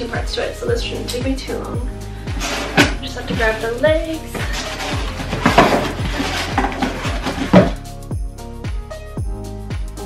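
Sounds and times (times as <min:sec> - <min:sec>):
background music with steady beat: 0:00.0 - 0:10.0
tree parts rustling in cardboard box: 0:02.4 - 0:07.8.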